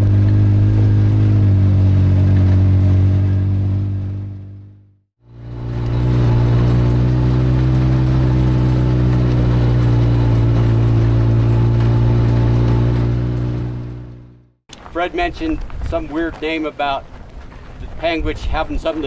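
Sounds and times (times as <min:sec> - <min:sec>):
utility vehicle engine running: 0:00.0 - 0:14.6.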